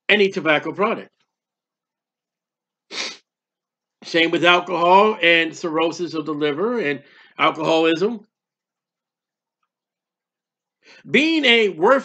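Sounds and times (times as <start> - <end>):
man's sharp burst of breath: 2.9 - 3.2.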